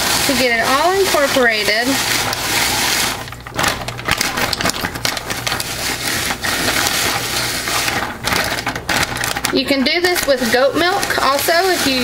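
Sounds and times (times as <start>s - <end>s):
ice chunks rattling in plastic pitcher: 0.0s - 12.0s.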